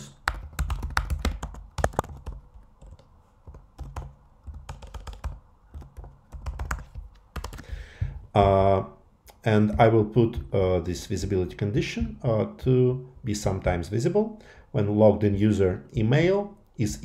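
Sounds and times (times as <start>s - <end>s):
typing on computer keyboard: 0.0s - 7.8s.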